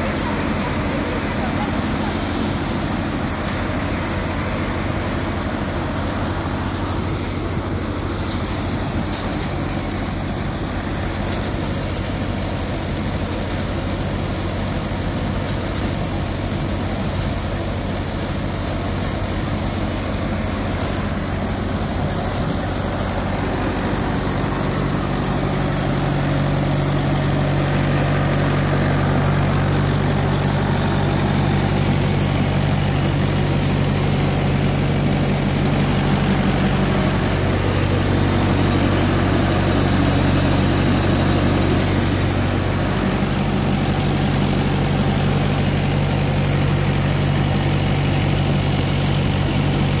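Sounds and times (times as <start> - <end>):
thresher rushing noise: 0.0 - 49.7
tractor diesel engine drone: 0.0 - 50.0.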